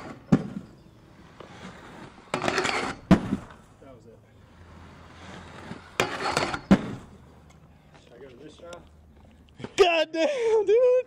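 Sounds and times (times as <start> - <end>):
skate wheels rolling on concrete: 0.0 - 11.0
skates hitting metal rail: 1.8 - 3.6, 5.2 - 7.2.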